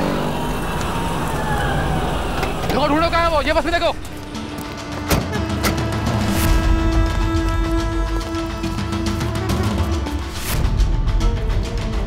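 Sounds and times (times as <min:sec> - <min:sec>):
dramatic sustained music: 0:00.0 - 0:12.0.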